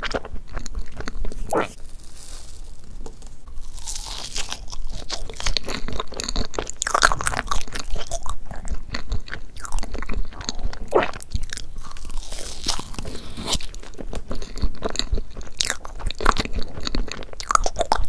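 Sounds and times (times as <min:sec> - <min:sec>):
close chewing: 0:00.0 - 0:18.0.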